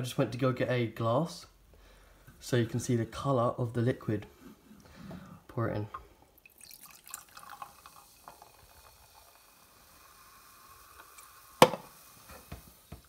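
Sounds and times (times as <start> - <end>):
soft drink pouring into glass: 6.4 - 12.7
can knocked down on table: 11.6 - 12.5.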